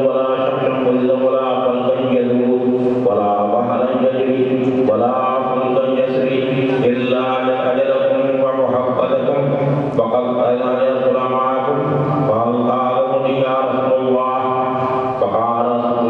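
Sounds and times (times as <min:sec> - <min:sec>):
man chanting: 0:00.0 - 0:16.0.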